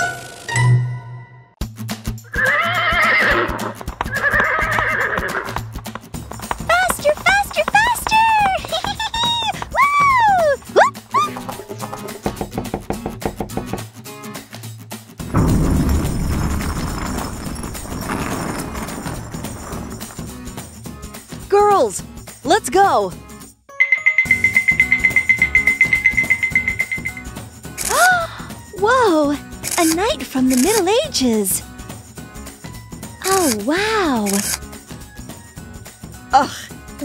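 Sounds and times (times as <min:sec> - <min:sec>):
background music: 0:00.0 - 0:37.0
horse whinnying: 0:02.3 - 0:05.8
hoofbeats clip-clopping: 0:02.4 - 0:13.8
toy drawbridge rumbling: 0:06.2 - 0:09.8, 0:15.4 - 0:20.4.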